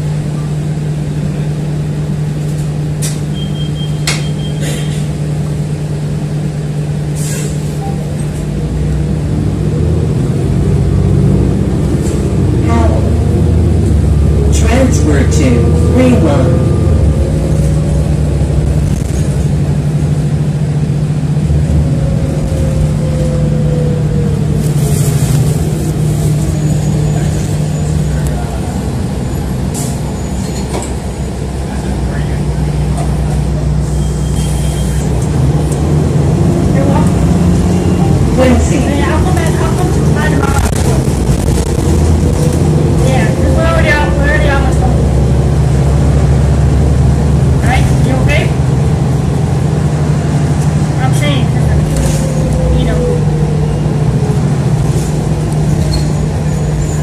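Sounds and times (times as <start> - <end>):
bus engine drone: 0.0 - 57.0.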